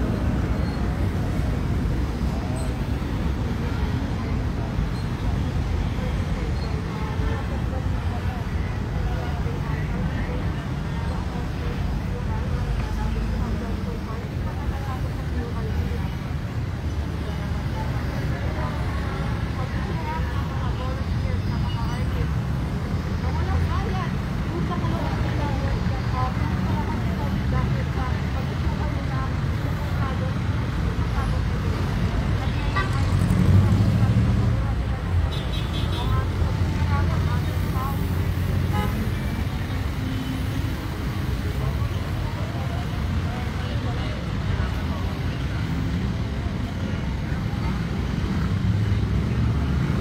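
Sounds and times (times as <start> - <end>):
traffic rumble: 0.0 - 50.0.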